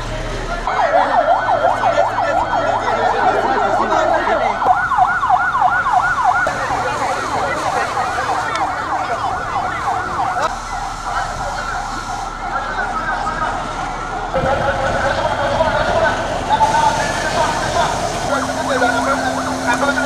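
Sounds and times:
emergency vehicle siren yelping: 0.0s - 20.0s.

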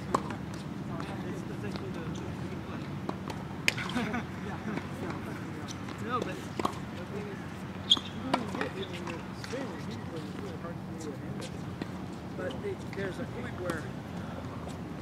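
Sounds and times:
distant indistinct voices: 4.0s - 15.0s
tennis balls knocking on hard court: 5.8s - 6.8s.

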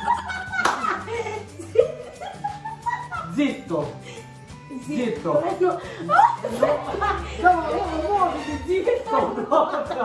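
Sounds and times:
sharp hand clap: 0.6s - 1.0s.

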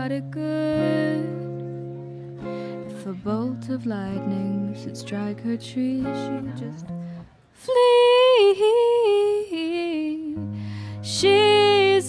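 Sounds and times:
electric guitar: 0.0s - 7.4s
quick breath: 2.4s - 2.9s, 10.5s - 11.0s.

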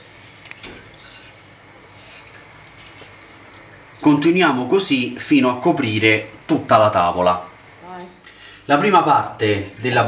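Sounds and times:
gas burner hissing: 0.0s - 10.0s.

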